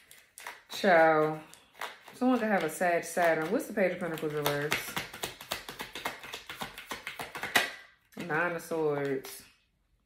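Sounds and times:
cards being shuffled: 0.0 - 7.7.

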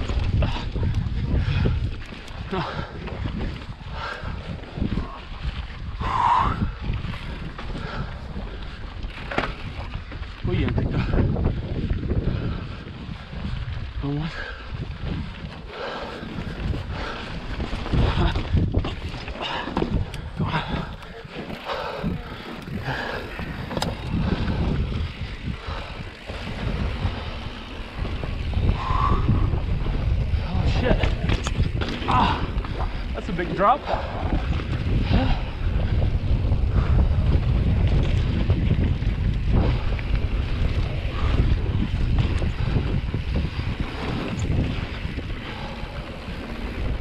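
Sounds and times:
bike knocking and rattling: 0.0 - 47.0
wind buffeting microphone: 0.0 - 47.0
tyres rumbling on rock: 15.9 - 47.0.

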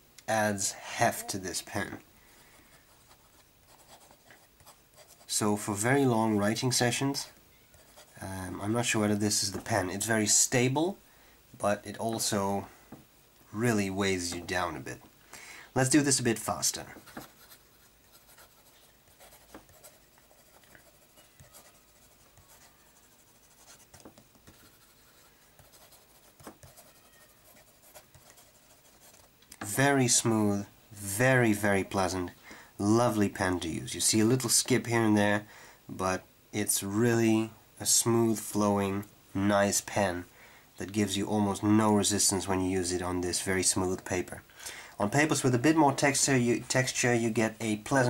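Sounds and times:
fountain pen scratching on paper: 2.9 - 5.3, 17.0 - 29.3.

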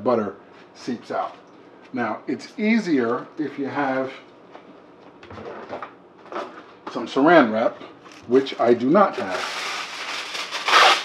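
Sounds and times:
plastic bag handling: 8.1 - 11.0.

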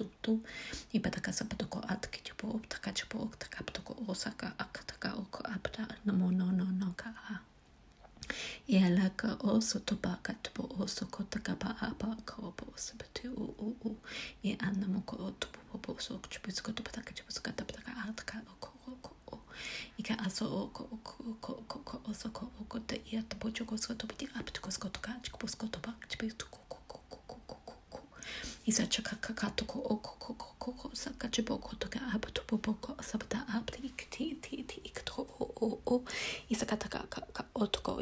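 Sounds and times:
person vocalising rapid syllables: 17.0 - 19.5, 20.3 - 38.0
person whispering nonsense syllables: 25.4 - 31.0
tongue and lip clicks: 26.3 - 28.2.

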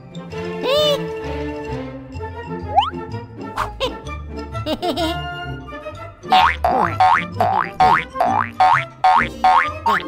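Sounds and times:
cartoon boing sound effect: 6.3 - 9.8.

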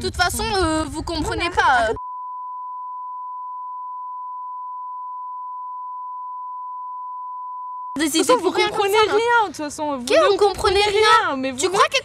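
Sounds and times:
sine test tone beep: 2.0 - 8.0.

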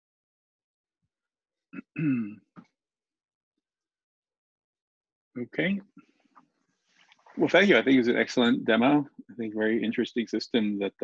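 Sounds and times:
person clearing throat: 1.8 - 2.6.

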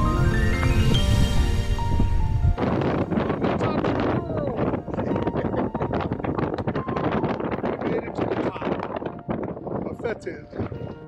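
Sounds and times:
background music: 0.0 - 11.0
wind gusting across microphone: 0.0 - 11.0.

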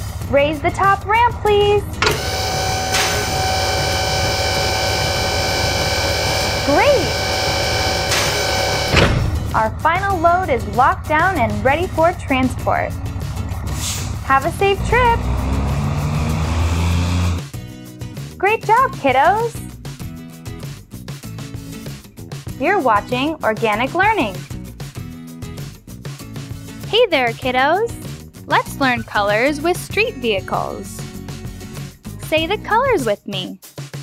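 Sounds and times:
cartoon truck engine rumble: 0.0 - 17.5
background music: 0.0 - 34.0
motor whirring: 2.0 - 9.3.

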